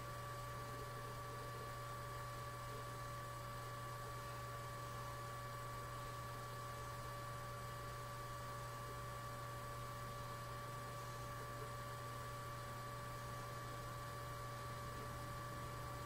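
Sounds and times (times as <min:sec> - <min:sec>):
low electrical hum: 0:00.0 - 0:16.0.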